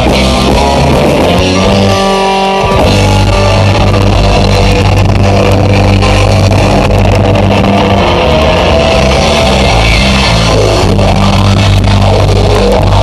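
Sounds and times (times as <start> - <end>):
distorted electric guitar: 0.0 - 13.0
heavy rock band playing: 0.0 - 13.0.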